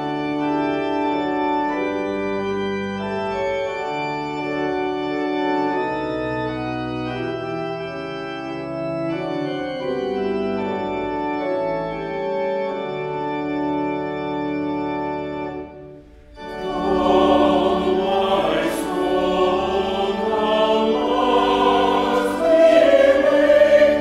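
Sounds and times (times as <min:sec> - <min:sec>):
organ playing held chords: 0:00.0 - 0:24.0.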